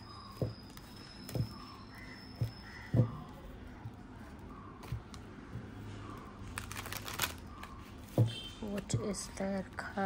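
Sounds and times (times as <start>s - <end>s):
faint bird calls: 0.0s - 8.8s
cards being shuffled: 6.5s - 8.9s.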